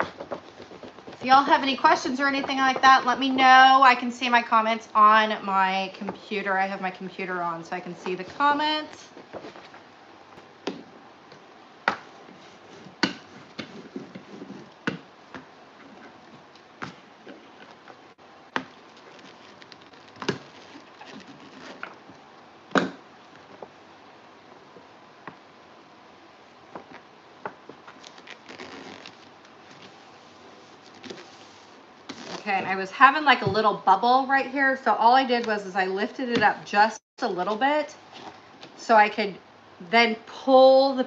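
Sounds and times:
paper rustling: 0:18.6 - 0:22.0, 0:27.7 - 0:32.5.

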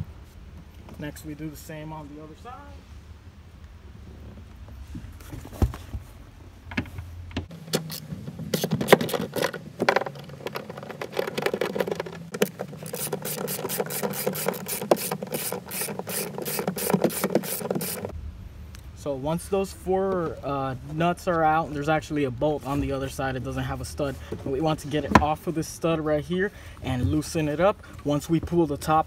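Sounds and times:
ratchet clicking: 0:11.6 - 0:18.1.

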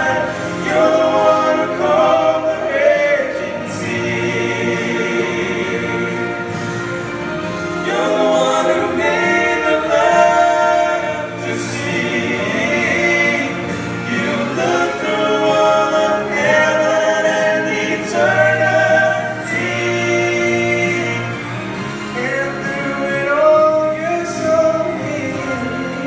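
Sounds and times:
men singing in close harmony: 0:00.0 - 0:06.7, 0:07.4 - 0:26.0.

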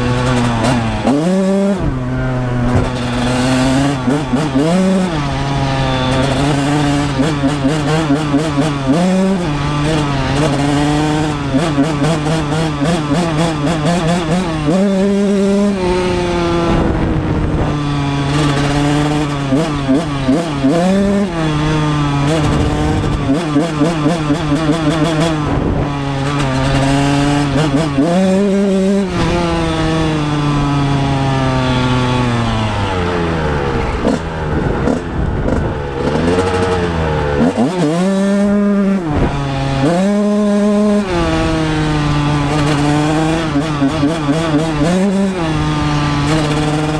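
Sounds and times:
two-stroke motorcycle engine revving: 0:00.0 - 0:46.9.

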